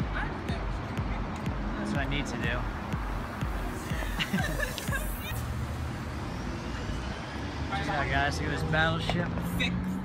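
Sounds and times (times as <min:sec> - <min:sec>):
traffic noise: 0:00.0 - 0:10.0
vehicle engine hum: 0:00.0 - 0:10.0.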